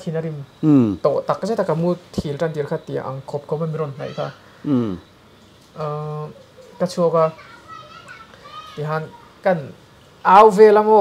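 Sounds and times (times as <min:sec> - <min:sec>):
man speaking quietly: 0:04.0 - 0:05.0.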